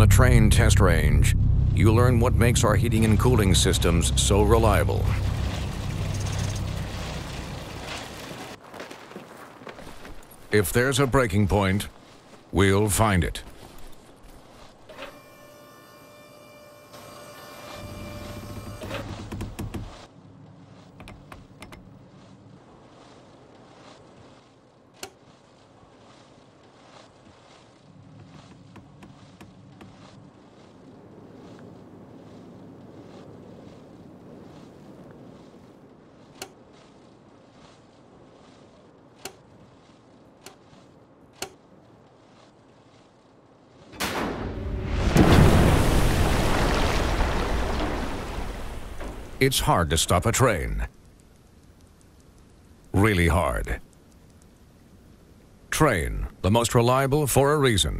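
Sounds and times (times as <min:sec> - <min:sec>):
boat hitting water loud splash: 0:00.0 - 0:08.6, 0:43.9 - 0:49.4
faint clicks: 0:50.9 - 0:53.0, 0:53.8 - 0:54.9.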